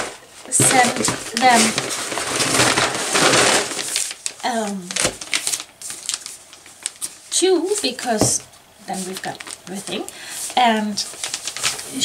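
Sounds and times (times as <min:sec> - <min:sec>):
paper bag crinkling: 0:00.0 - 0:12.0.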